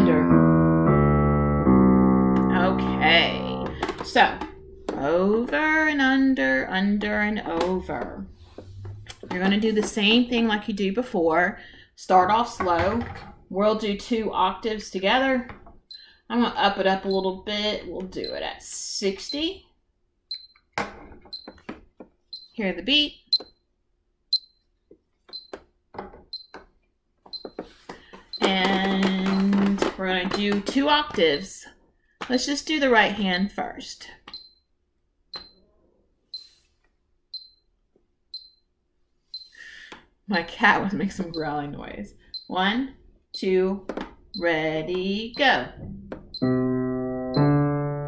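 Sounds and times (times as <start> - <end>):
piano notes: 0.0 - 9.7, 44.4 - 48.0
metronome beeps: 1.7 - 8.2, 17.0 - 17.4, 18.2 - 18.5, 40.4 - 41.8, 44.4 - 48.0.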